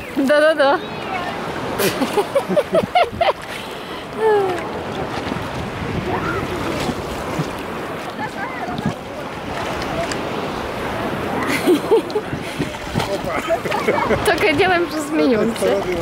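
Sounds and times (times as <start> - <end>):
water lapping and sloshing: 0.0 - 16.0.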